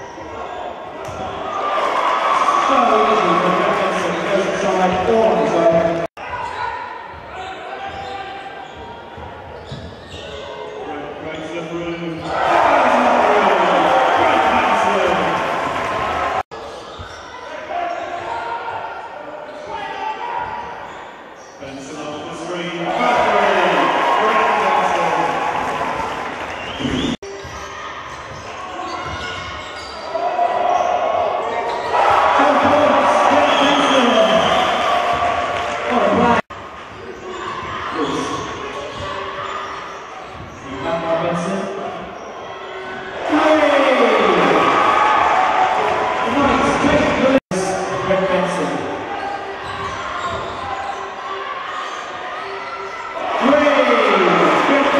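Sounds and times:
crowd shouting and cheering: 0.0 - 54.9.

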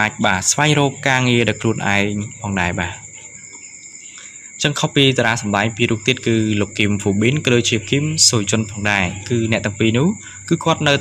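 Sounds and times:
person narrating: 0.0 - 3.1, 4.6 - 11.0
steady high-pitched whine: 0.0 - 11.0.

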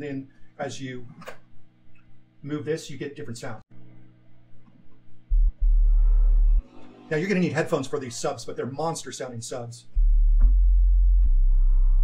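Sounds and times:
deep sub-bass synth notes: 5.1 - 7.7, 9.9 - 12.0.

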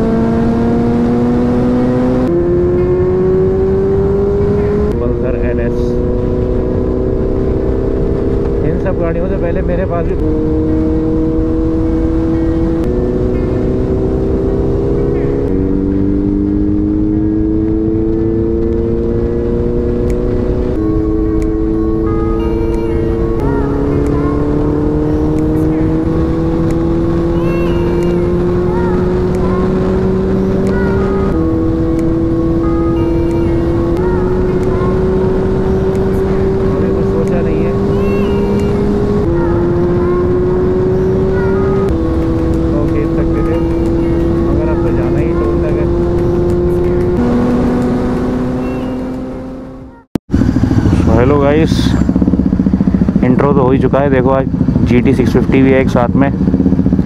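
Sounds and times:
motorcycle engine shifting gears: 0.0 - 57.0
wind rush on microphone: 4.9 - 14.4, 50.3 - 57.0.

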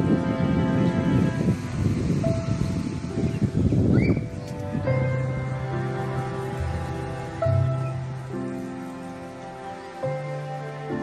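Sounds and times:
music with long held notes: 0.0 - 11.0
rough rushing noise: 0.0 - 11.0.

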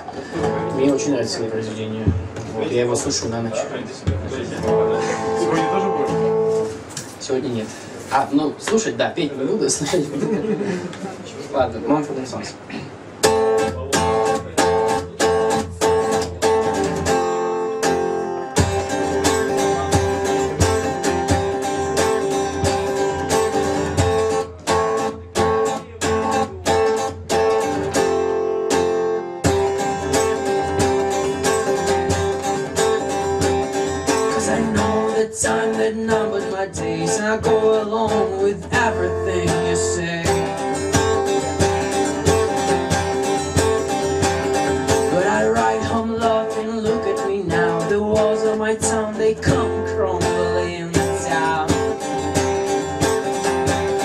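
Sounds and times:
acoustic guitar strumming: 0.0 - 8.8, 12.6 - 54.0.

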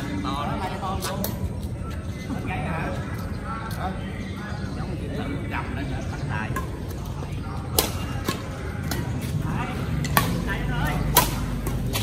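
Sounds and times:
racket striking shuttlecock: 10.0 - 12.0.

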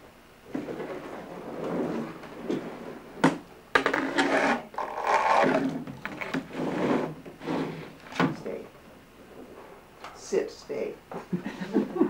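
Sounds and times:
plastic palette scraping on table: 3.8 - 8.0.

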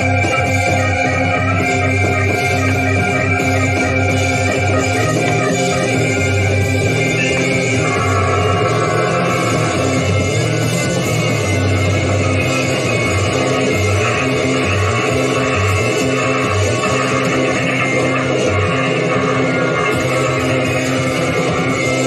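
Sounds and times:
progressive rock band playing: 0.0 - 22.0
stepping bass line: 0.0 - 22.0.

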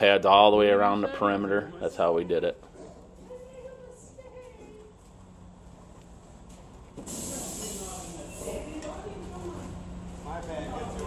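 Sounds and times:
loud hiss: 7.0 - 8.7.

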